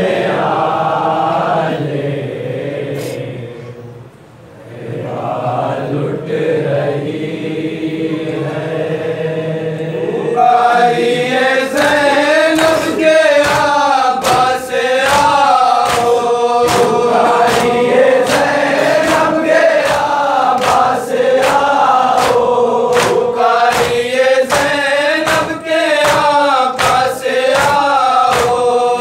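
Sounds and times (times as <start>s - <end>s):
men chanting a lament: 0.0s - 4.0s, 4.6s - 29.0s
hands beating on chests: 12.6s - 28.6s.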